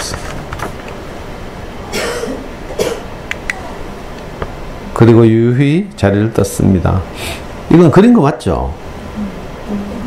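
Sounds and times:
person coughing: 0:01.9 - 0:03.1.

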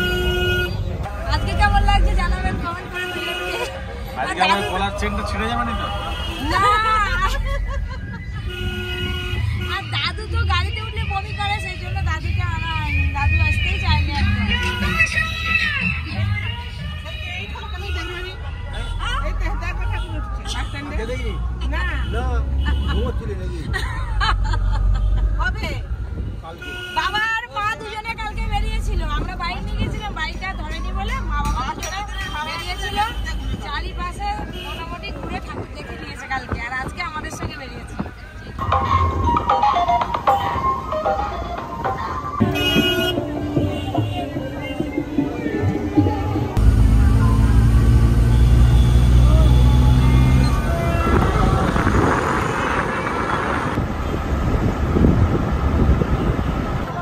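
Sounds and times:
car engine and road noise: 0:00.0 - 0:57.0
rough traffic noise: 0:00.0 - 0:57.0
vehicle low rumble: 0:34.4 - 0:57.0
passengers calling out: 0:37.1 - 0:53.8.

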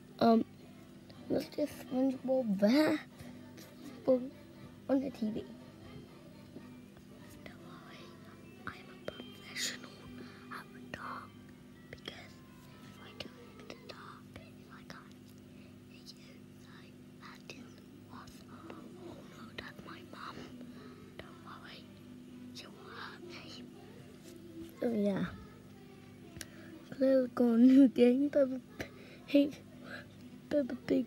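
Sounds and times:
steady low hum: 0:00.0 - 0:31.0
child whispering: 0:07.3 - 0:11.3, 0:11.9 - 0:15.2, 0:15.9 - 0:22.0, 0:22.6 - 0:27.2, 0:28.3 - 0:31.0.

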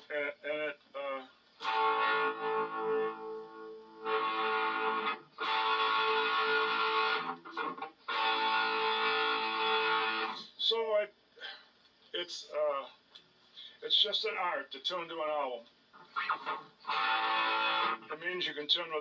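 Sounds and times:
distorted electric guitar note: 0:01.6 - 0:10.5, 0:16.0 - 0:18.4.

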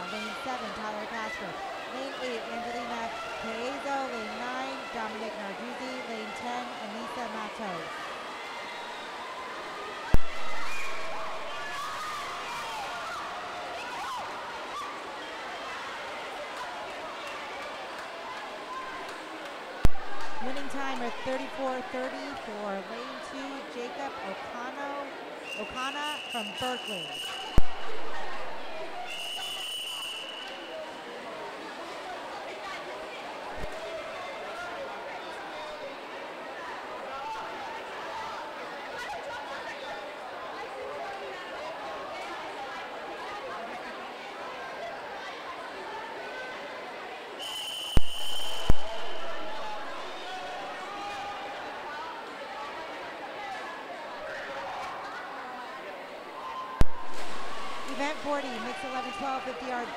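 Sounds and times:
echoing crowd chatter: 0:00.0 - 0:59.9.

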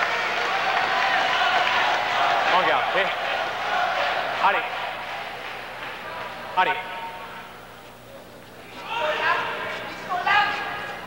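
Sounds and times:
murmur of arena crowd: 0:00.0 - 0:11.0
man shouting: 0:08.8 - 0:10.7.

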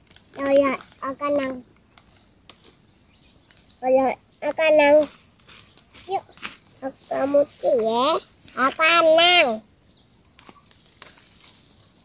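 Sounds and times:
leaf stalks snapping: 0:00.0 - 0:02.8, 0:05.4 - 0:06.6, 0:10.3 - 0:11.8
insects chirring: 0:00.0 - 0:12.0.

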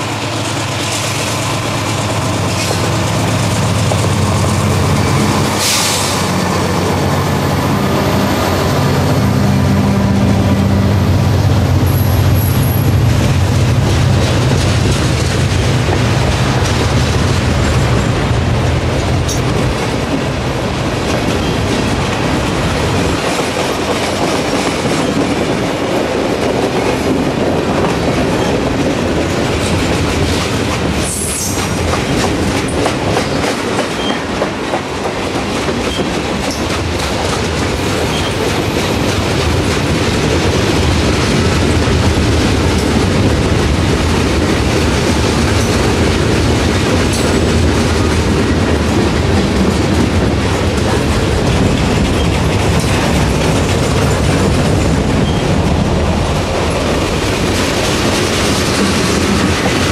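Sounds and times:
locomotive engine rumble: 0:00.0 - 0:23.2
train wheels clicking over rail joints: 0:00.0 - 0:59.9.

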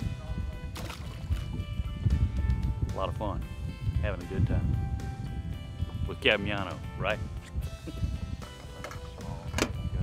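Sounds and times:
background music with held tones: 0:00.0 - 0:10.0.

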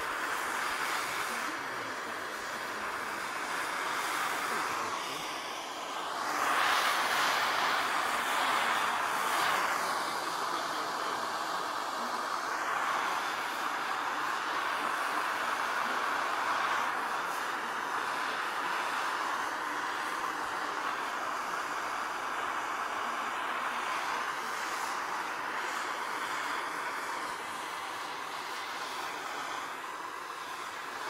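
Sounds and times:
gas torch flame hissing: 0:00.0 - 0:31.0.

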